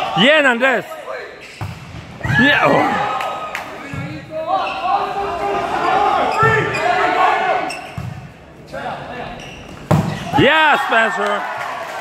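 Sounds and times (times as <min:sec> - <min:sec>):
players' voices calling: 0:02.3 - 0:07.9.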